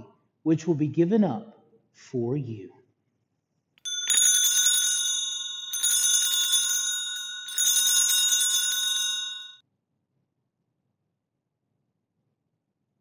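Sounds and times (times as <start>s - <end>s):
altar bells jangling: 3.8s - 9.6s.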